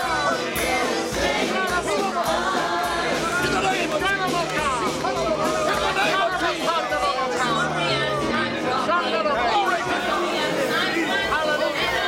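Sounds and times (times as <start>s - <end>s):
congregation praying aloud: 0.0s - 12.0s.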